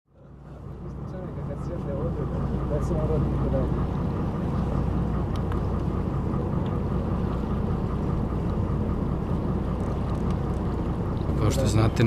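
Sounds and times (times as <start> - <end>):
low engine hum: 0.1 - 12.0.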